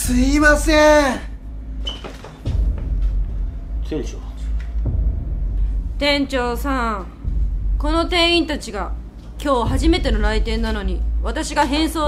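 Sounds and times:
man speaking: 0:00.0 - 0:01.4
low rumble: 0:02.5 - 0:12.0.

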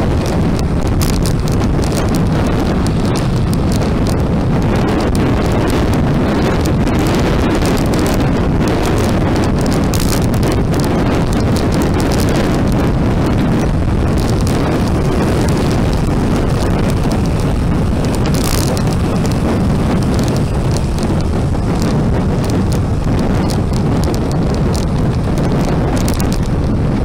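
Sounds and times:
low road rumble: 0:00.0 - 0:27.0
wind rushing over microphone: 0:00.0 - 0:27.0.

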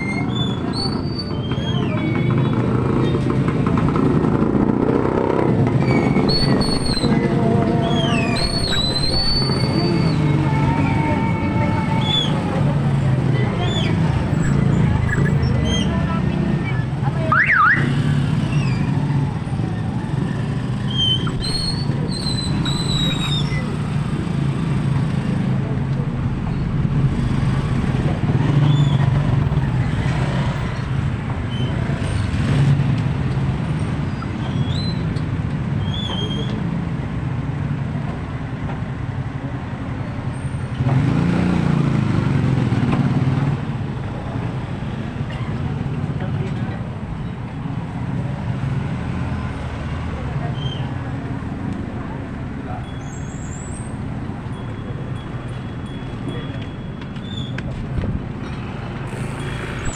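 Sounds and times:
motorcycle engines in slow traffic: 0:00.0 - 0:59.9.

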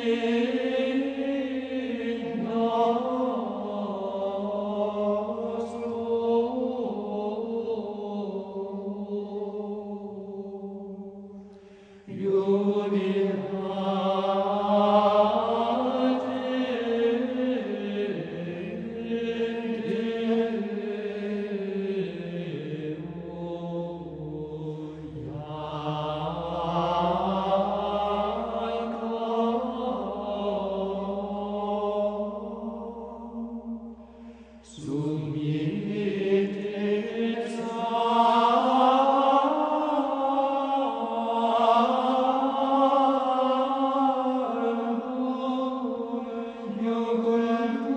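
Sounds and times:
voices chanting unaccompanied: 0:00.0 - 0:47.9.

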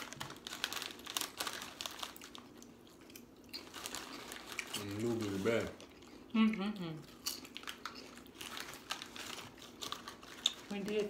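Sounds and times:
chip bag crinkling: 0:00.0 - 0:06.3, 0:07.1 - 0:11.0.

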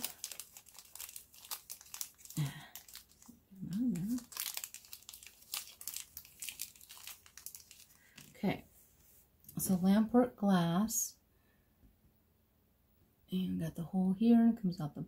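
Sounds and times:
plastic bag crinkling: 0:00.0 - 0:08.4.

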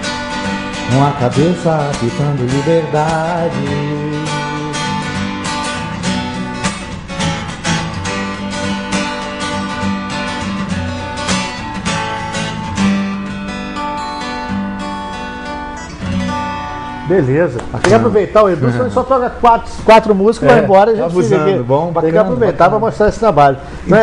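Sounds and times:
acoustic guitar strumming: 0:00.0 - 0:23.8.

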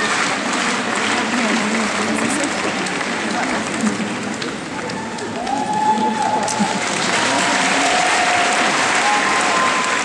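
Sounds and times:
audience applauding: 0:00.0 - 0:10.0
crowd voices: 0:00.0 - 0:10.0.

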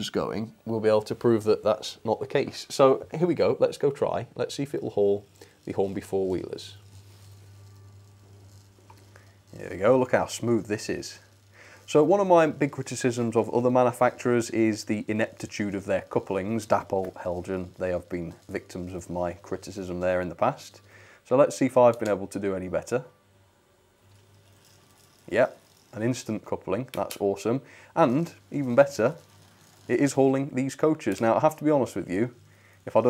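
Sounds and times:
model train motor humming: 0:01.1 - 0:23.0, 0:23.8 - 0:33.0.

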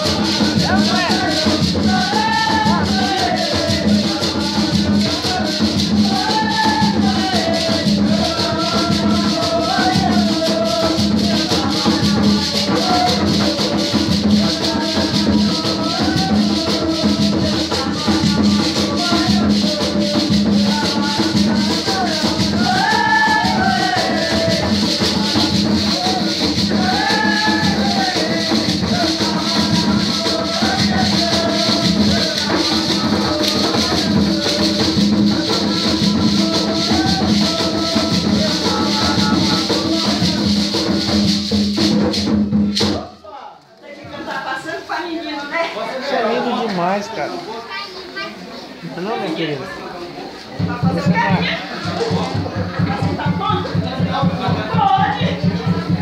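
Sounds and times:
maracas shaking: 0:00.0 - 0:56.0
voices singing devotional song: 0:00.0 - 0:56.0.

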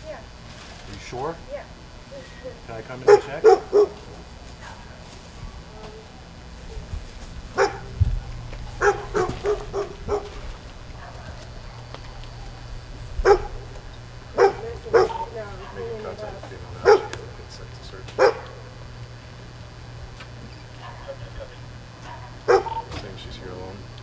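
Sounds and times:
steady low hum: 0:00.0 - 0:24.0
dog barking: 0:03.0 - 0:04.9, 0:07.5 - 0:08.0, 0:08.8 - 0:12.6, 0:13.2 - 0:16.2, 0:16.8 - 0:17.3, 0:18.2 - 0:18.6, 0:20.7 - 0:23.0.

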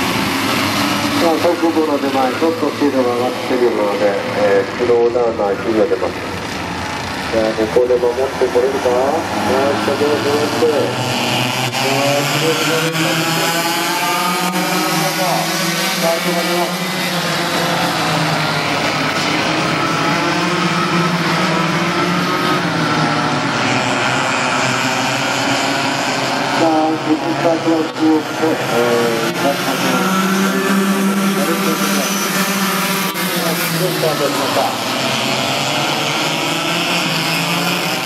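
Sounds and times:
racing kart engines passing: 0:00.0 - 0:38.0.

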